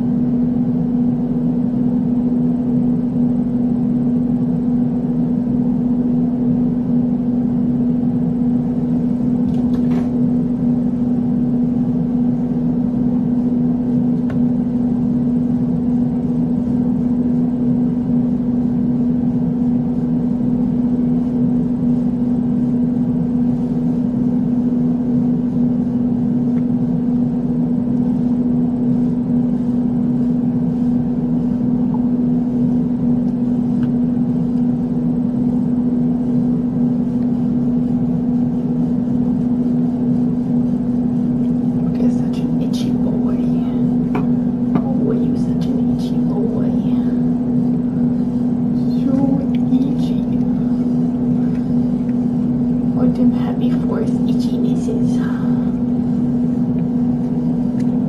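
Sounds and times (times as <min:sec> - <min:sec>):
steady machine hum: 0:00.0 - 0:58.0.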